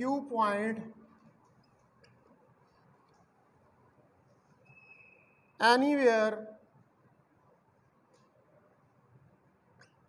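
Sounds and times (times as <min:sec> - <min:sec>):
marker squeaking on whiteboard: 0:04.4 - 0:05.5.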